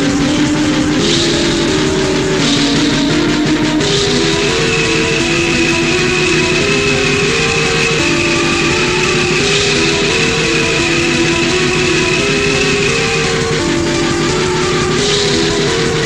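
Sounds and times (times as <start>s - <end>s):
distorted black metal guitars: 0.0s - 16.0s
high ringing tone: 0.0s - 16.0s.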